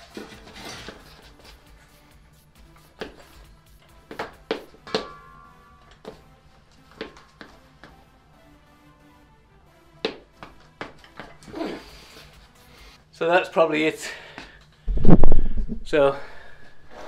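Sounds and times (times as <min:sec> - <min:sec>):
metal clanks and knocks: 0:00.0 - 0:01.2, 0:04.8 - 0:06.1
faint music: 0:00.0 - 0:15.0.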